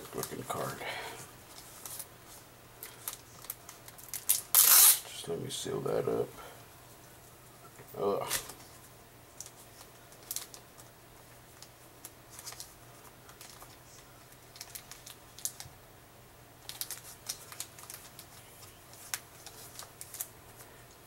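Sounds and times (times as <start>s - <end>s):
plastic crinkles and clicks: 2.8s - 5.0s, 9.4s - 10.9s, 11.5s - 15.7s, 16.6s - 21.0s.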